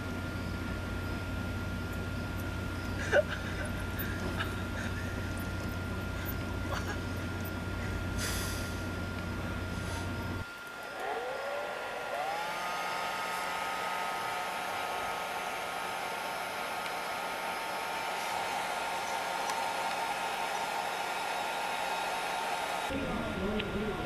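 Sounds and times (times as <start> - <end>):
hair dryer motor whine: 2.8 - 23.9.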